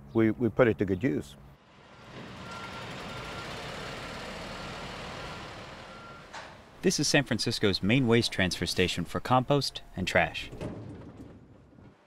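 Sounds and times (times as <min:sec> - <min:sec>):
vehicle traffic rumble: 0:01.2 - 0:08.8
reversing alarm beeps: 0:02.4 - 0:03.7, 0:04.6 - 0:06.3.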